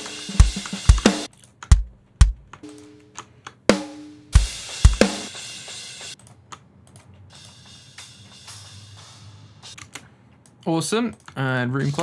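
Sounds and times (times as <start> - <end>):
kick drum strokes: 0.0 - 2.5, 3.7 - 5.3
drum kit groove: 0.0 - 6.2, 7.2 - 9.9.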